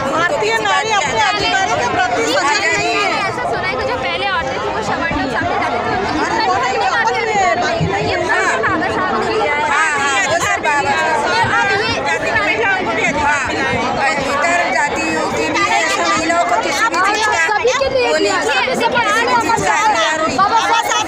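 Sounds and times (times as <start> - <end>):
crowd chatter: 0.0 - 21.0
women talking over each other: 0.0 - 21.0.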